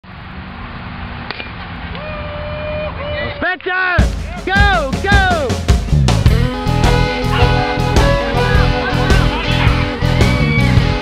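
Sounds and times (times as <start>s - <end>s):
person shouting: 2.0s - 5.6s, 6.9s - 10.8s.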